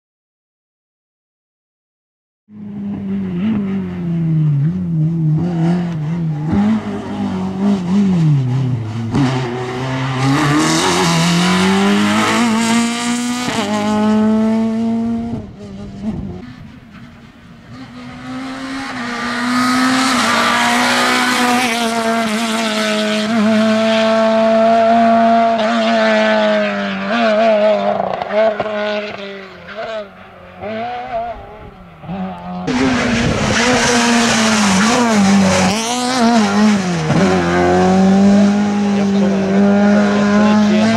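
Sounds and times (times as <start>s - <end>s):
rally car engine revving: 2.5s - 40.9s.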